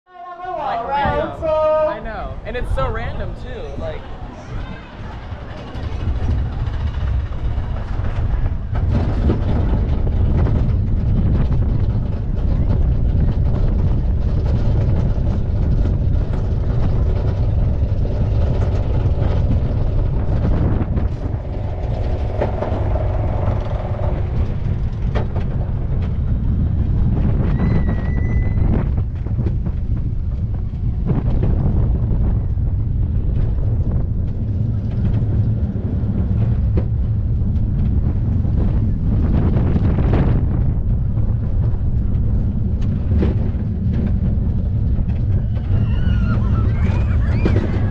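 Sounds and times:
roller coaster wheels rumbling: 0:00.1 - 0:47.9
roller coaster chain lift clicking: 0:04.4 - 0:47.9.

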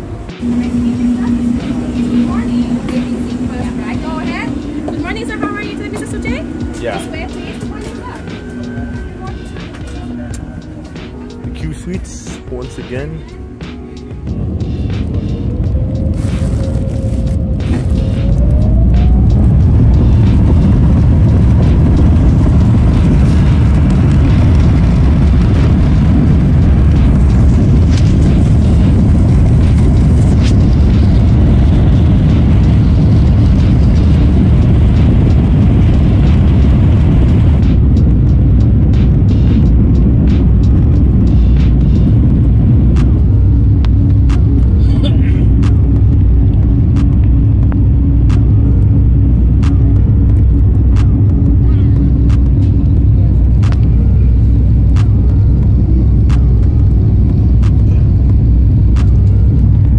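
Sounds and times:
jet engine noise in cabin: 0:00.0 - 0:59.9
runway rumbling and knocks: 0:00.0 - 0:59.9.

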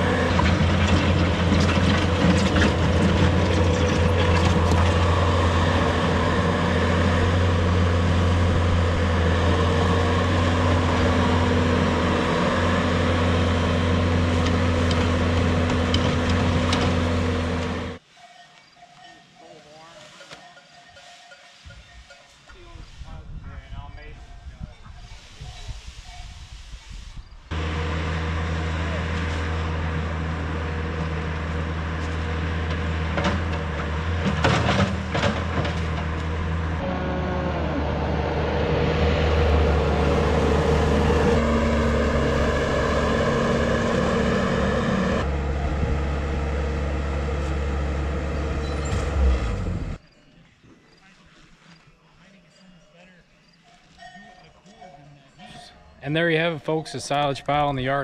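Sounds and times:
engine running: 0:00.0 - 0:18.0, 0:27.5 - 0:50.0
faint outdoor sound: 0:00.0 - 0:58.0
people's voices: 0:50.2 - 0:58.0.

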